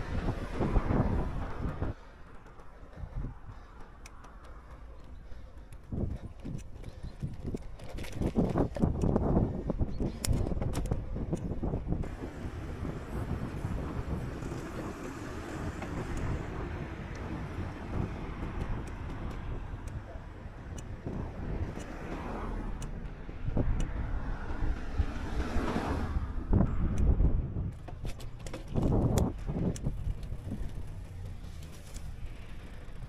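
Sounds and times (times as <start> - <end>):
bicycle tyres rumbling: 0.0 - 33.0
wind buffeting microphone: 0.0 - 33.0
bumps and rattles: 0.1 - 22.3, 27.1 - 33.0.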